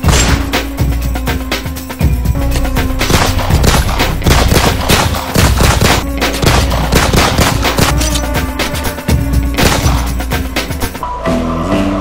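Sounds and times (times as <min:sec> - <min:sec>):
title music: 0:00.3 - 0:11.0
rapid gunfire: 0:03.1 - 0:08.0, 0:09.6 - 0:10.1.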